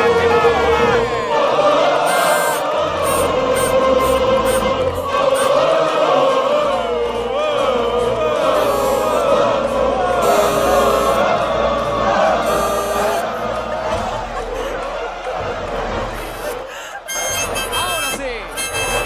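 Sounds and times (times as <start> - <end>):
chorus singing bending melody: 0.0 - 19.0.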